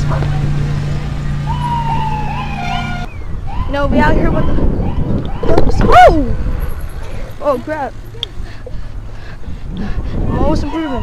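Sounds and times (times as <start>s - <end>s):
wind and road noise: 0.0s - 11.0s
siren chirps: 1.4s - 6.0s
siren wailing: 1.4s - 6.4s, 10.3s - 11.0s.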